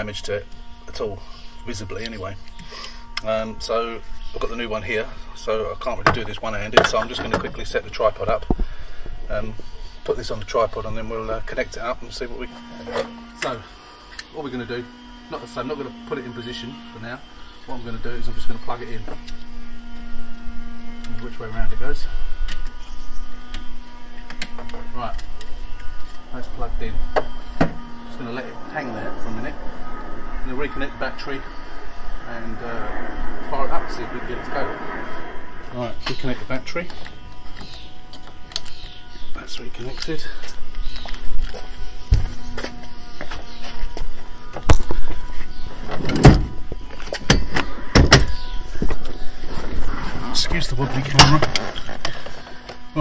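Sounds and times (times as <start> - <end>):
steady low hum: 0.0 - 53.0.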